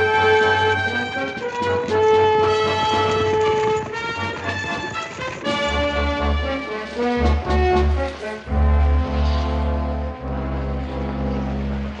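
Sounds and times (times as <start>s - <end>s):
orchestra playing: 0.0s - 12.0s
loud brass chord: 5.6s - 12.0s.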